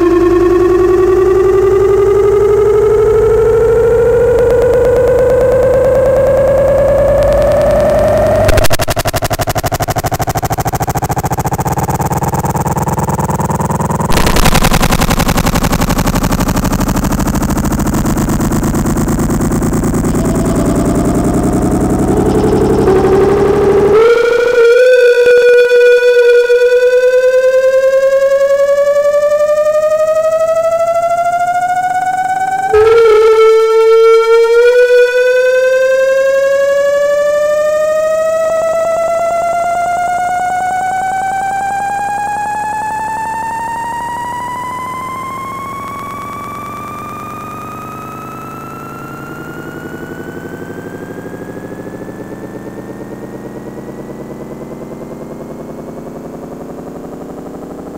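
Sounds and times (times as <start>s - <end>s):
synthesizer tone gliding upward: 0.0s - 57.9s.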